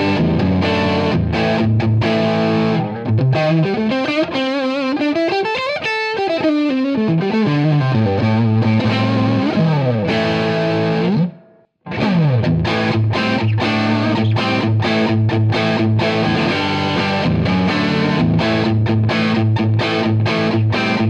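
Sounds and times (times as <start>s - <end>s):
distorted electric guitar: 0.0s - 21.0s.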